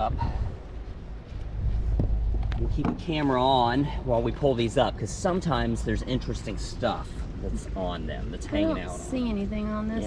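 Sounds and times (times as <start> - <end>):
wind buffeting microphone: 0.0 - 8.4.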